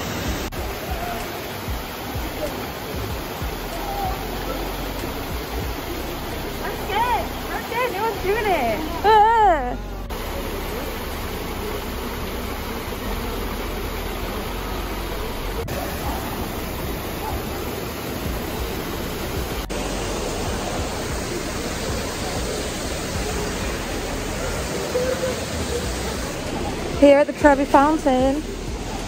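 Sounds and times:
fountain water splashing: 0.0s - 29.0s.

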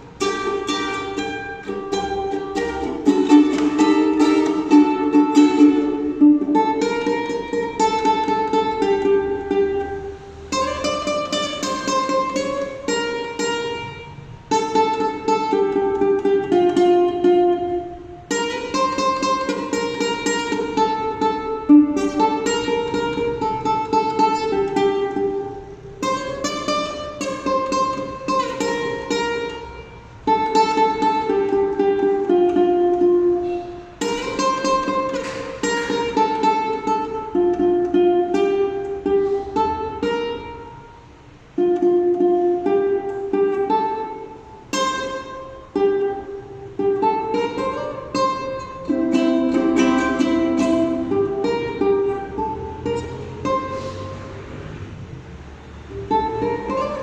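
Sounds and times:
ukulele playing: 0.0s - 57.0s.

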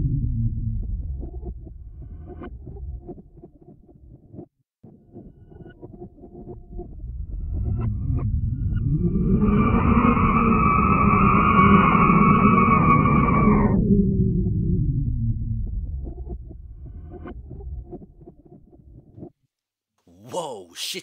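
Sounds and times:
low rumble: 0.0s - 3.3s, 6.6s - 18.4s.

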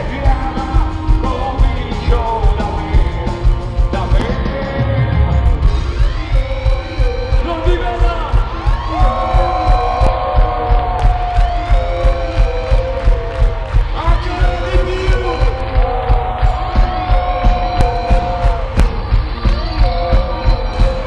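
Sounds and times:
crowd noise: 0.0s - 21.0s
heavy kick drum beat: 0.0s - 21.0s
rock band playing live: 0.0s - 21.0s.

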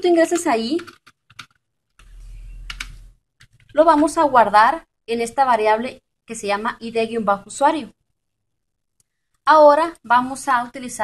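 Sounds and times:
keyboard keystroke clicks: 0.4s - 3.7s.

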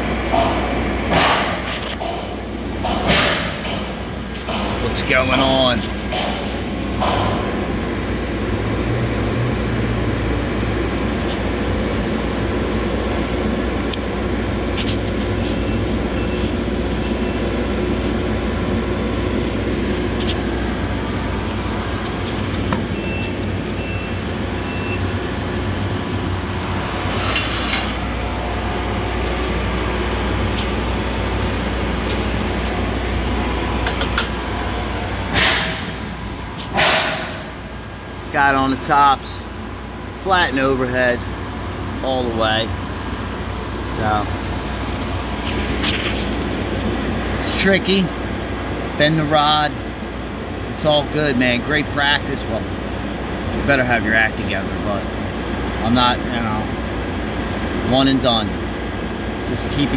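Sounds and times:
engine-like mechanical drone: 0.0s - 59.9s.

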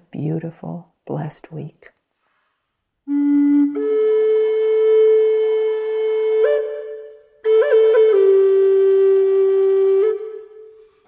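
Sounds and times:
flute note: 3.1s - 11.0s.

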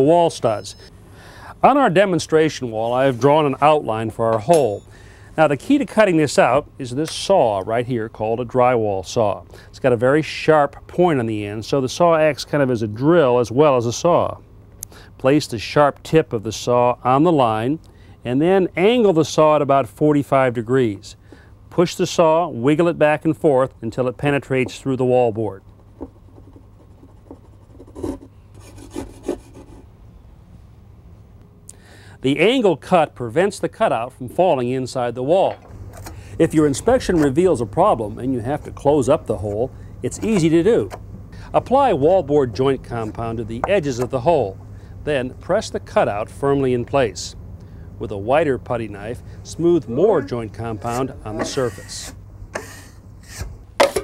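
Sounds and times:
hand saw rasping through drywall: 26.8s - 29.8s, 50.6s - 53.5s
knife scraping pan edge: 50.8s - 54.0s.

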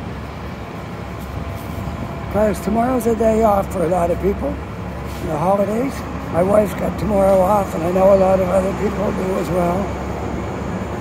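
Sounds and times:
buses rumbling: 0.0s - 11.0s
street traffic: 0.0s - 11.0s.

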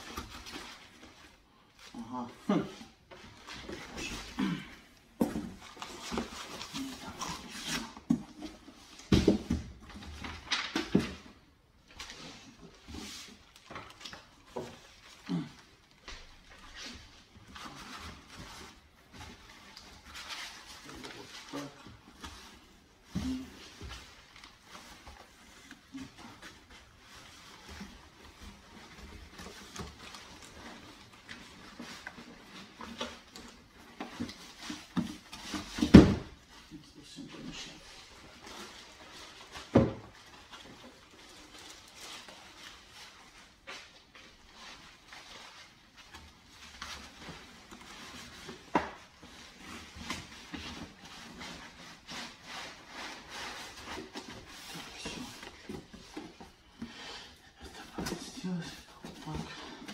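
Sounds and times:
cardboard and foam rustling: 0.0s - 59.9s.

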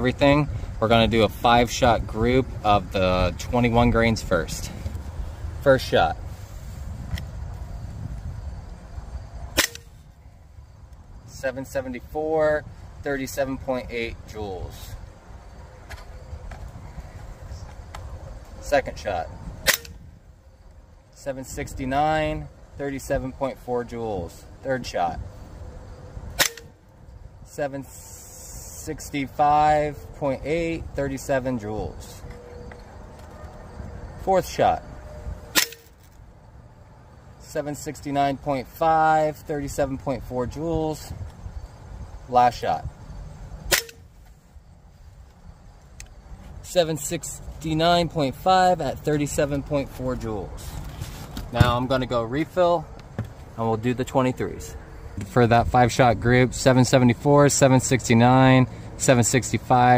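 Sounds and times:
air rifle shot: 9.6s - 10.0s, 26.4s - 26.7s, 43.7s - 44.0s.

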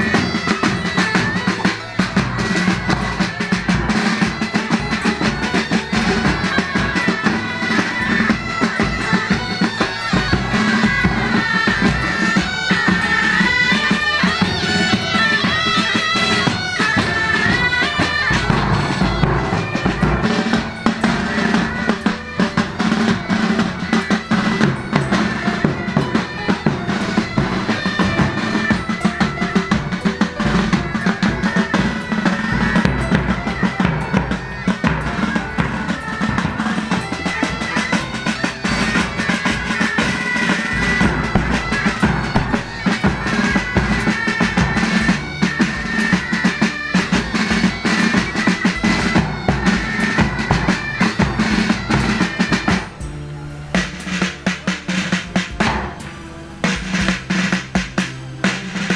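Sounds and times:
bagpipes playing: 0.0s - 58.9s
bass drums: 0.0s - 58.9s
snare drums beating: 0.0s - 58.9s.

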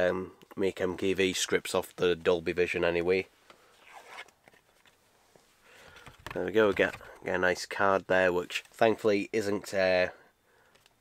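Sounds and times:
soft clicks of cardboard: 10.7s - 11.0s.

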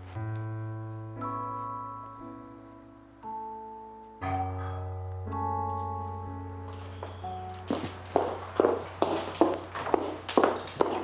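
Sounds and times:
footsteps on hard floor: 6.6s - 11.0s.

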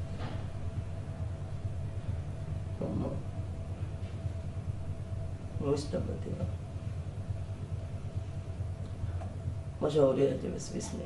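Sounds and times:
steady low rumble: 0.0s - 11.0s
voice: 2.8s - 3.2s, 5.6s - 6.5s, 9.8s - 11.0s.

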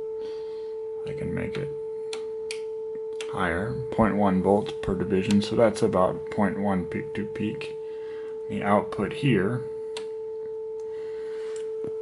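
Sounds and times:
pure test tone: 0.8s - 12.0s.

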